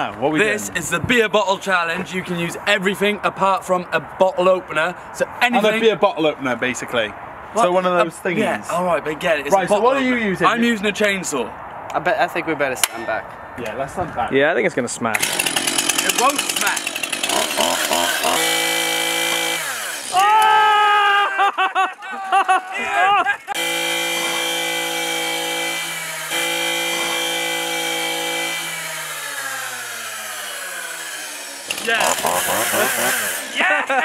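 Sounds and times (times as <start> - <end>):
chainsaw running: 15.1 - 20.6, 23.5 - 34.0.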